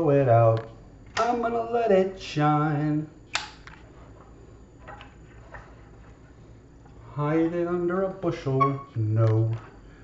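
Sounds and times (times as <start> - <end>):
lamp switch clicking: 3.3 - 3.8.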